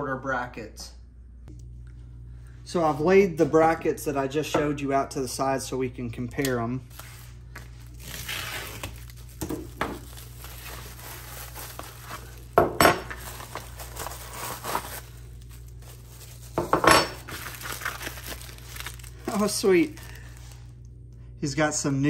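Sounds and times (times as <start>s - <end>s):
plastic wrap rustling: 6.8s - 20.8s.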